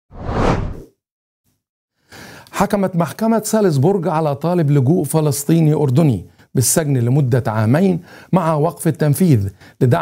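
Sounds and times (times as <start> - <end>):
whoosh sound effect: 0.1 - 0.9.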